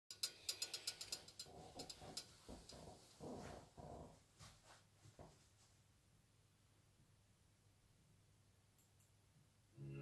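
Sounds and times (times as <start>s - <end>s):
ratchet-like clicks: 0.1s - 2.8s.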